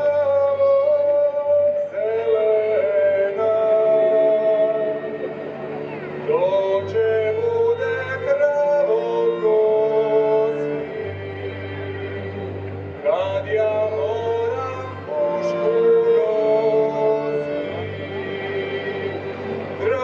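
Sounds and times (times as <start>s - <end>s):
double bass: 0.0s - 20.0s
person singing slow melody: 0.0s - 20.0s
violins: 0.0s - 20.0s.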